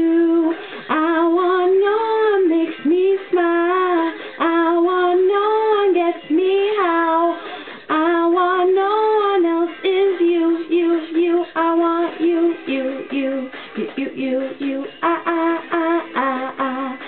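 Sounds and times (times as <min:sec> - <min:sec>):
woman singing: 0:00.0 - 0:17.0.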